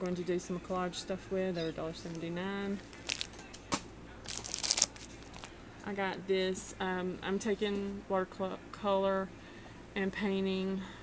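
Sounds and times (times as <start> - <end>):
plastic packaging crinkling: 2.8 - 5.5.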